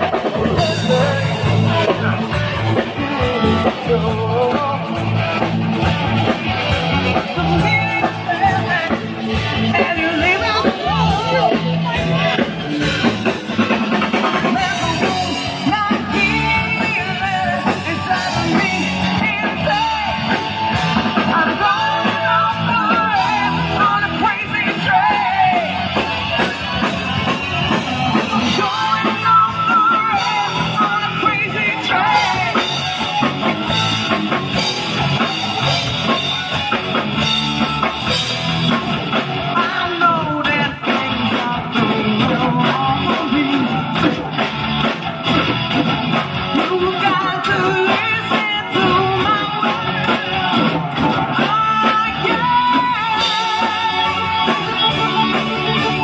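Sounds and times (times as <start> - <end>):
electric guitar: 0.0 - 56.0
live rock band playing: 0.0 - 56.0.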